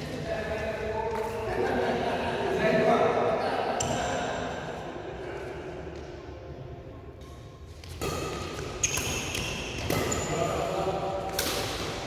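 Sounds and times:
racket hitting shuttlecock: 7.8 - 10.4, 11.2 - 12.0
sneakers squeaking on court: 7.8 - 10.6.

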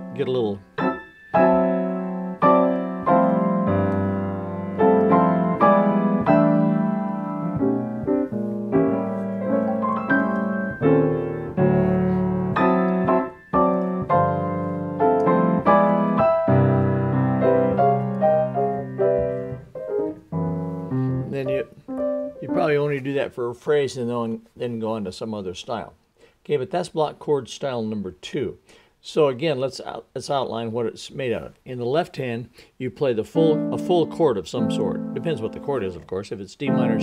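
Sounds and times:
grand piano chords: 0.0 - 23.0, 33.4 - 36.0, 36.7 - 37.0.

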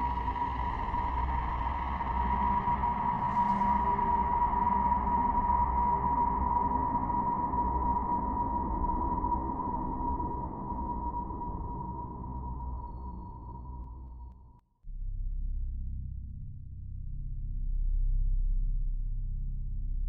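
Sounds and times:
low rumble: 11.0 - 20.0.

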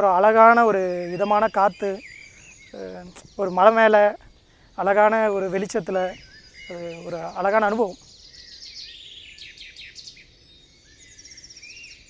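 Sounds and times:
bird trill: 0.0 - 12.0
birds chirping: 0.0 - 12.0.

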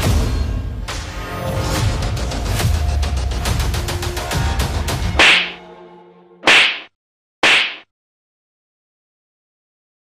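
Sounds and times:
sharp hit sound effects: 5.2 - 5.6, 6.4 - 7.9.

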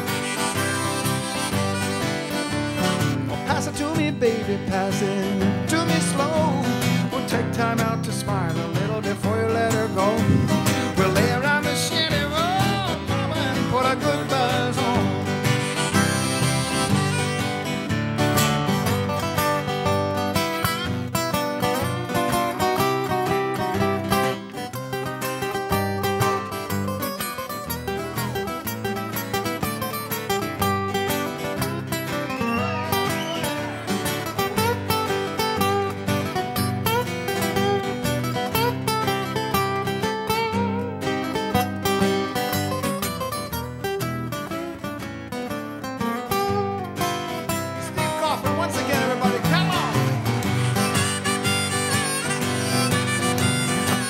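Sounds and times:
harmonica: 0.0 - 4.6, 5.3 - 43.8, 46.5 - 54.0
flatpicked acoustic guitar lead: 0.0 - 54.0
strummed acoustic rhythm guitar: 0.0 - 54.0.

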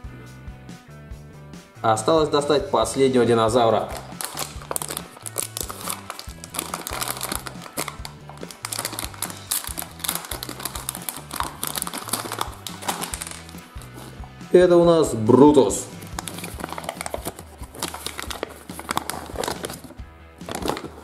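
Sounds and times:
background music with bass line: 0.0 - 21.0
plastic packet crinkling: 3.6 - 14.2, 16.0 - 21.0.

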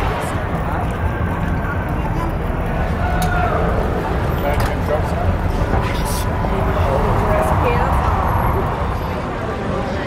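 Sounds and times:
indistinct voices of passers-by: 0.0 - 10.0
traffic: 0.0 - 10.0.

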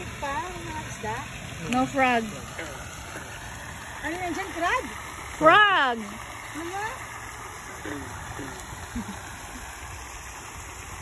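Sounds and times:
fountain splashing: 0.0 - 11.0
faint voice-like sounds: 7.6 - 9.6.

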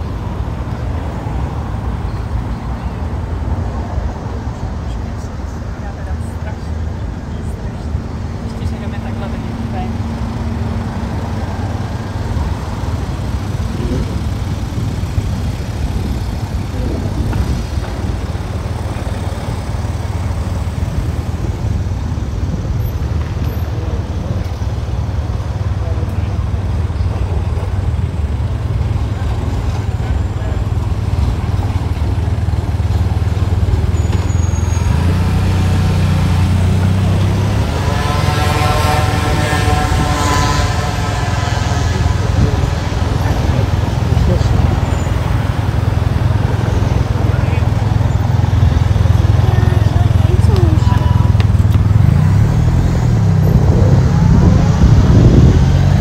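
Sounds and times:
heavy vehicle passing: 0.0 - 56.0
passers-by voices: 0.0 - 56.0
road traffic rumble: 0.0 - 56.0.

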